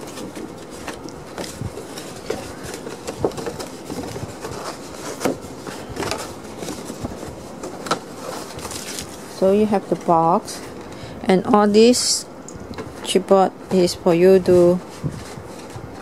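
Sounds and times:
paper rustling: 0.0s - 11.0s, 14.4s - 16.0s.

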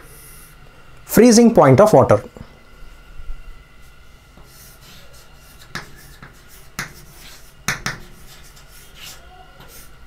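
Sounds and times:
chalk scratching on chalkboard: 4.4s - 10.0s
chalk tapping on chalkboard: 4.4s - 10.0s.

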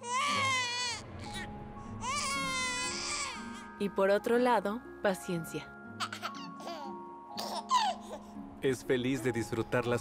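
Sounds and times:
child crying: 0.0s - 3.5s
soft background music: 0.0s - 10.0s.

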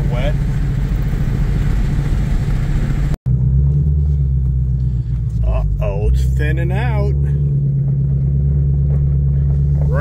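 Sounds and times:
car engine running: 0.0s - 10.0s.

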